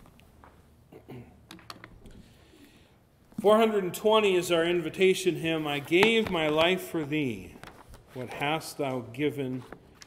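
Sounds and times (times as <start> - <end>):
book handled on wooden pulpit: 7.6 - 8.2.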